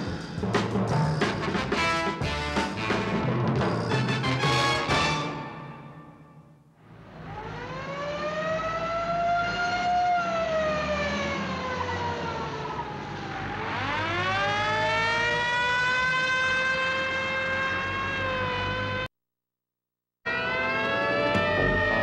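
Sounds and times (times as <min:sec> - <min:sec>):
truck engines rumbling: 0:06.8 - 0:19.0, 0:20.3 - 0:22.0
fire engine siren wailing: 0:06.8 - 0:19.1, 0:20.3 - 0:22.0.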